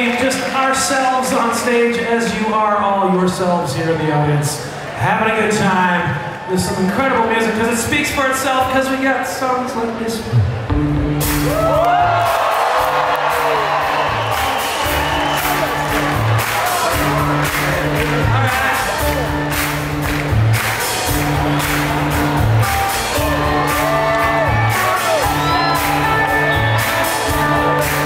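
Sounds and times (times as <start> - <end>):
electric bass guitar riff: 10.6 - 12.2, 14.9 - 28.0
audience whoops and cheers: 11.3 - 28.0.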